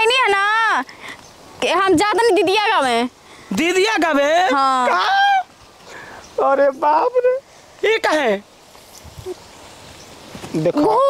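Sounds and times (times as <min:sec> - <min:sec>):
person whining cry: 0:04.8 - 0:05.5.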